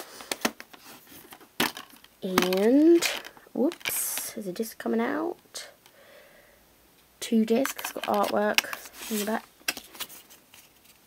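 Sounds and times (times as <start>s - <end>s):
faint rustling: 7.6s - 11.0s.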